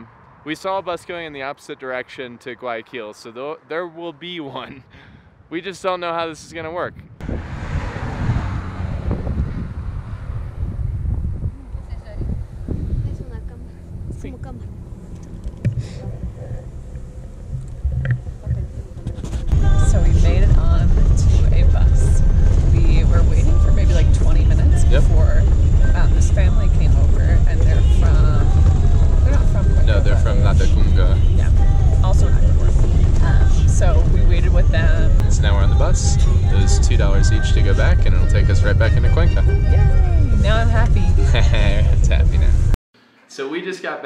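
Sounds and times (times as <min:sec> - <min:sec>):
voices: 0:00.0 - 0:04.9, 0:11.5 - 0:44.0
bus engine and road rumble: 0:00.0 - 0:42.8
wind: 0:00.0 - 0:43.4.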